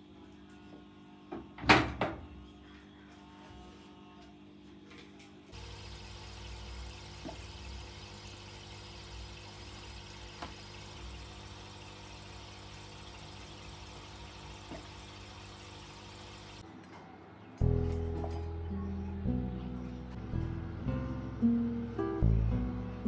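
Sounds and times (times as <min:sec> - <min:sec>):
low motor hum: 0:05.6 - 0:16.6
water pouring from filter pump: 0:05.6 - 0:16.6
soft background music: 0:17.1 - 0:23.0.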